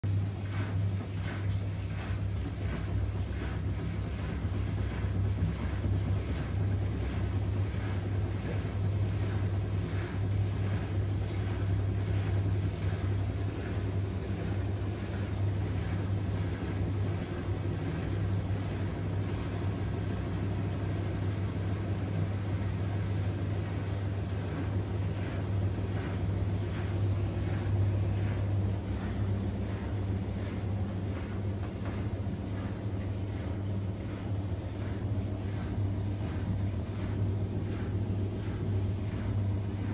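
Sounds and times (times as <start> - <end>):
washing machine low hum: 0.0 - 39.9
washing machine water sloshing: 0.0 - 39.9.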